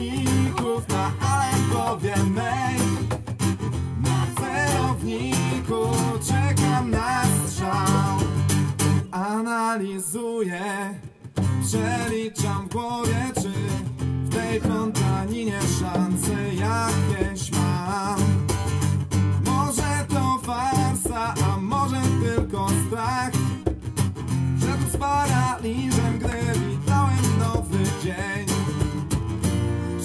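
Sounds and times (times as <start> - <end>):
person singing with vibrato: 0.0 - 3.2, 3.9 - 18.4
acoustic guitar strumming: 0.0 - 9.2, 11.0 - 30.0.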